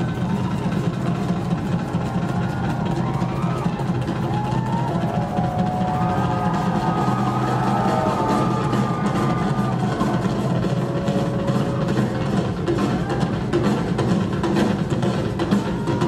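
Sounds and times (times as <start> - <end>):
rock drum kit solo: 0.0 - 16.0.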